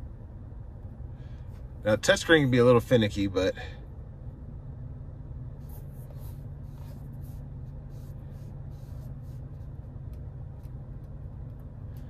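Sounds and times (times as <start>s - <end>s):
low cabin hum: 0.0s - 12.0s.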